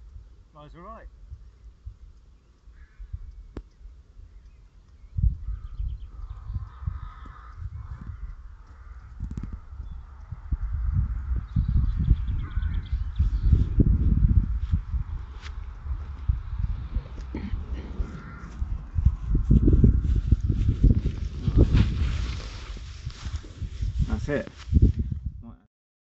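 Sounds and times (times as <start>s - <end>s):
wind buffeting microphone: 1.1s - 25.6s
crows cawing: 2.7s - 3.4s, 5.5s - 10.3s, 12.4s - 13.1s, 17.2s - 20.2s.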